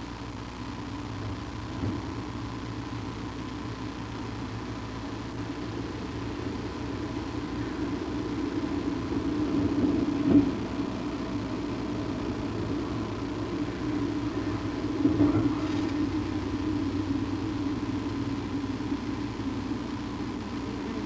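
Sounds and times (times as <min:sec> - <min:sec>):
low engine-like rumble: 0:00.0 - 0:21.0.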